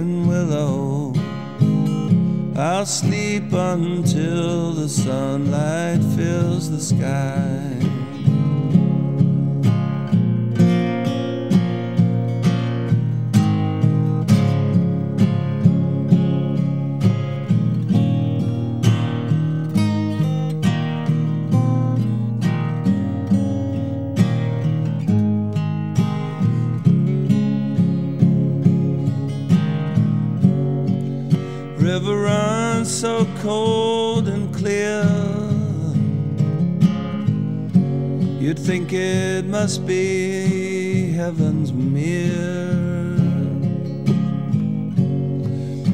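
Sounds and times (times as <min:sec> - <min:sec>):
acoustic guitar strumming: 0:00.0 - 0:45.9.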